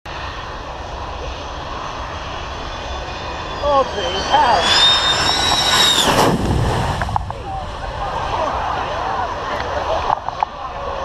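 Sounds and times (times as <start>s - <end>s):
faint high jet whine: 0.1s - 11.0s
jet engine roar: 0.1s - 11.0s.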